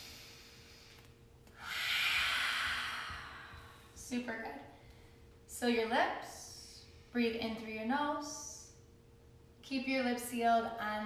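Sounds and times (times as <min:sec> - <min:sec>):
breathy exhale: 0:00.0 - 0:04.0.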